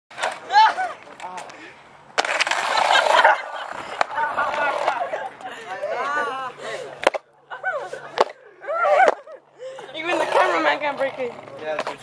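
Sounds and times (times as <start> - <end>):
skateboard deck cracking: 0.1 - 5.5, 7.0 - 7.3, 8.1 - 9.4, 10.0 - 12.0
boys yelling: 0.4 - 1.3, 4.1 - 10.9.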